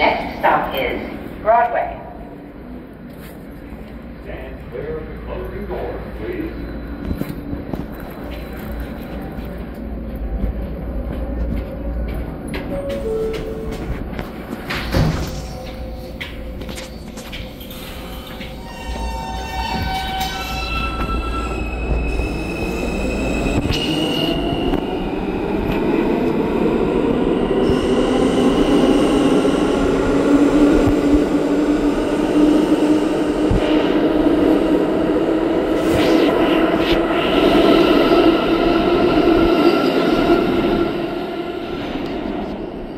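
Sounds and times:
subway train running noise: 0:00.0 - 0:42.9.

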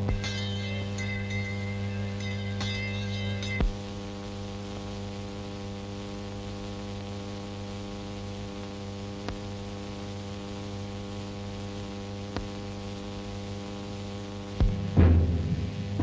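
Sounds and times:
electrical hum with hiss: 0:00.0 - 0:16.0
thump: 0:14.6 - 0:16.0.

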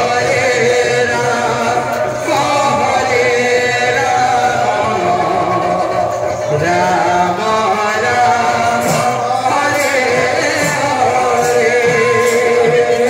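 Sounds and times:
instrumental accompaniment: 0:00.0 - 0:13.0
voices singing in chorus: 0:00.0 - 0:13.0.

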